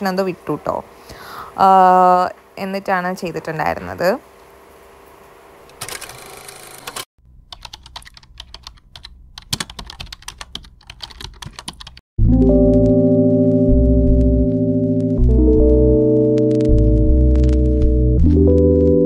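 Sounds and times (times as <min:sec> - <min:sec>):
keyboard typing clicks: 0:06.9 - 0:12.0
synthesizer music with held chords: 0:12.2 - 0:19.0.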